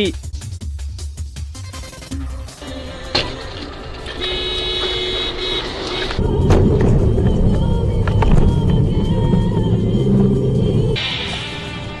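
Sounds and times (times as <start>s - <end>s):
car horn blaring: 2.6s - 6.4s
highway road noise: 2.6s - 12.0s.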